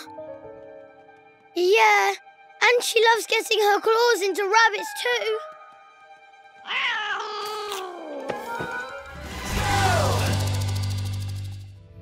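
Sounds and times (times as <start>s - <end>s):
background music: 0.0s - 12.0s
cat meowing: 6.6s - 8.2s.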